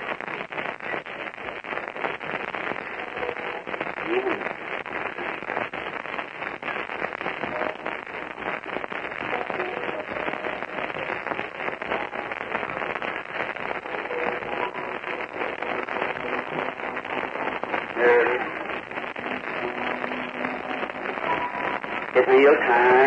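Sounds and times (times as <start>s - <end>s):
recording crackle and hiss: 0.0s - 23.0s
faint indistinct voices: 13.8s - 23.0s.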